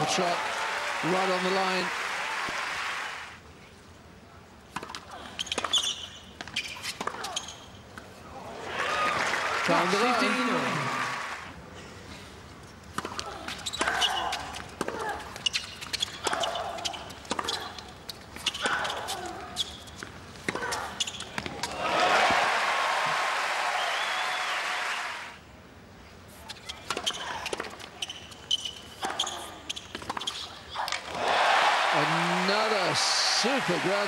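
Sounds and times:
crowd applauding: 0.0 - 3.4, 8.6 - 11.5, 21.8 - 25.4, 31.1 - 34.0.

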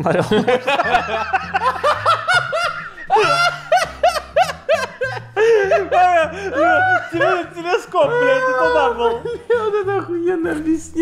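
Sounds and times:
men laughing: 0.0 - 10.8.

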